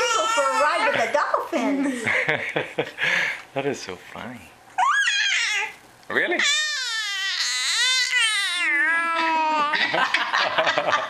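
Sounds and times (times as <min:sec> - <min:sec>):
baby high-pitched vocalization: 0:04.8 - 0:05.8, 0:06.4 - 0:09.8.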